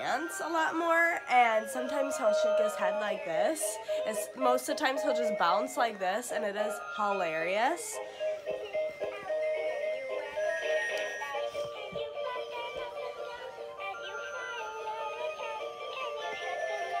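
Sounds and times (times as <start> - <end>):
electronic toy song: 0.0 - 17.0.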